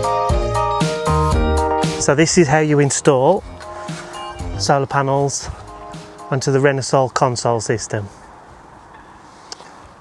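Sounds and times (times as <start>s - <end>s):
outdoor background noise: 2.0s - 10.0s.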